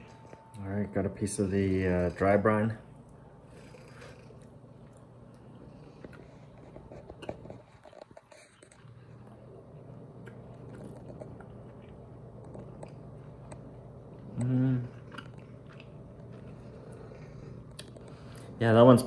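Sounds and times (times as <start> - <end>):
person chewing: 3.0 - 18.6
person humming: 14.3 - 15.0.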